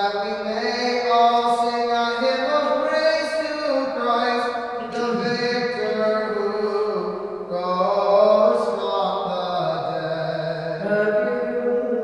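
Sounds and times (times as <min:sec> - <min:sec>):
person chanting: 0:00.0 - 0:12.0.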